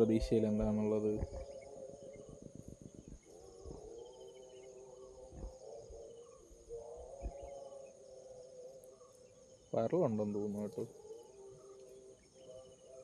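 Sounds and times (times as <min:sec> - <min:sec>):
soft low thumps: 0:00.0 - 0:04.0, 0:05.2 - 0:06.0
insects chirring: 0:00.0 - 0:13.0.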